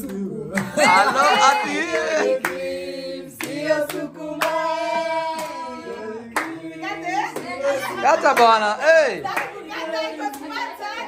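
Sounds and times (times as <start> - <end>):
people cheering and whooping: 0.6 - 2.4
hand claps: 3.4 - 4.7, 6.4 - 6.6, 9.3 - 9.6.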